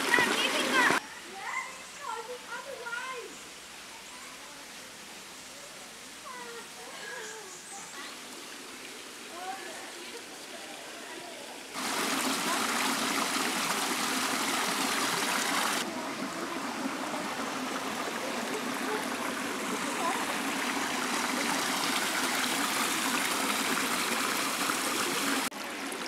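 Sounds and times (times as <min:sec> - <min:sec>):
creek water trickling over rocks: 0:00.0 - 0:26.0.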